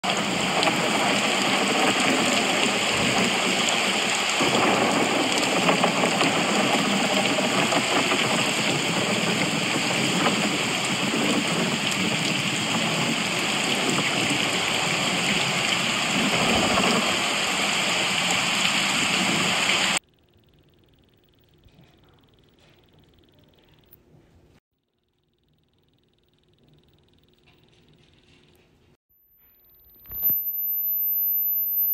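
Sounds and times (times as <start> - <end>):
heavy rain: 0.0 - 20.0.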